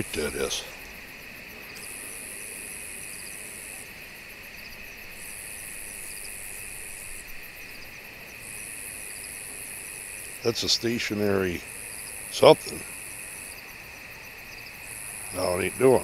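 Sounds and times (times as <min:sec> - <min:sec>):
crickets trilling: 0:00.0 - 0:16.0.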